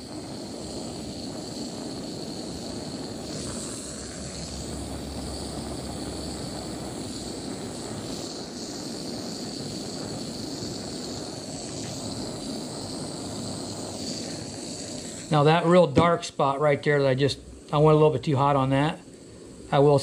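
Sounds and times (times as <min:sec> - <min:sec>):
gas torch hissing: 0:00.0 - 0:20.0.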